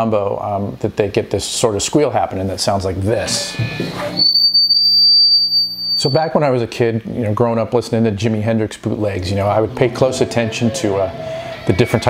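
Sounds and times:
guitar feedback whistling tone: 0:03.2 - 0:06.3, 0:10.3 - 0:12.0.

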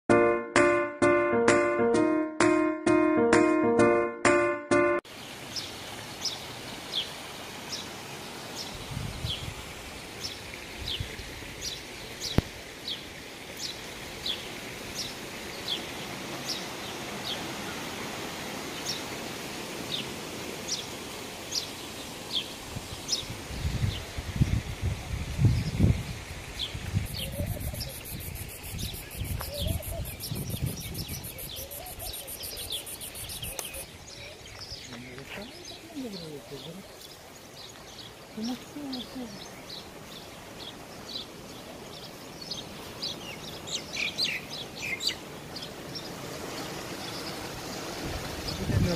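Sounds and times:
music jingle: 0:00.1 - 0:05.1
wind rumble on microphone: 0:08.8 - 0:09.8, 0:22.7 - 0:32.2, 0:47.8 - 0:48.9
bird chirping: 0:27.0 - 0:47.4.

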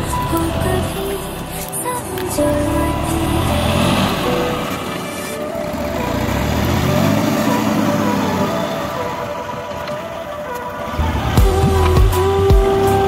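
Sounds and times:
tractor diesel engine running: 0:00.0 - 0:10.0.

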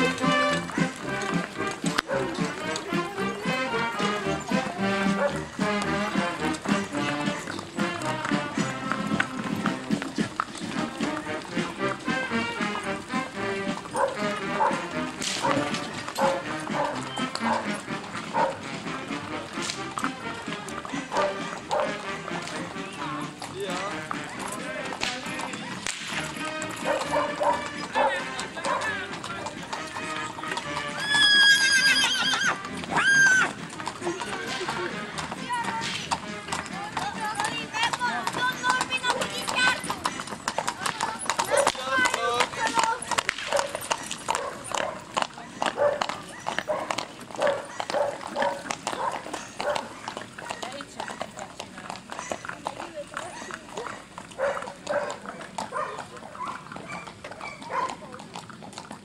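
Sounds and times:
horse whinnying: 0:00.0 - 0:24.4, 0:25.5 - 0:57.9
hooves clip-clopping on pavement: 0:00.0 - 0:59.0.

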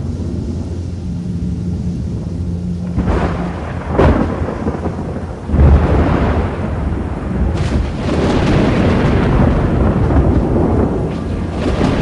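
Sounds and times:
loud steady rumbling noise: 0:00.0 - 0:12.0.

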